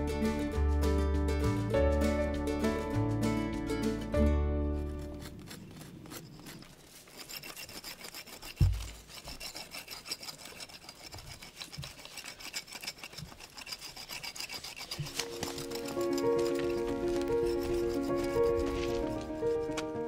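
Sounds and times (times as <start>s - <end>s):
music: 0.0s - 5.4s, 15.0s - 20.0s
bark being scraped off stalk: 4.7s - 20.0s.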